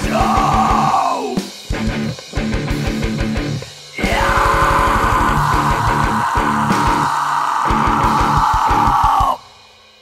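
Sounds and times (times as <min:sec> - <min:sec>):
distorted electric guitar: 0:00.0 - 0:09.4.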